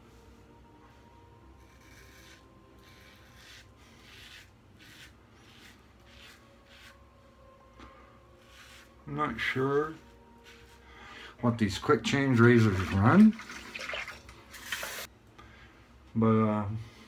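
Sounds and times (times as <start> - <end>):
razor scraping stubble: 1.6 - 7.0.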